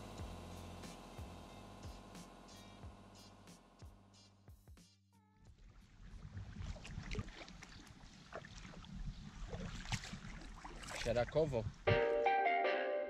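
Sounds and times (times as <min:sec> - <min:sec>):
water splashing from paddling: 0:05.6 - 0:11.6.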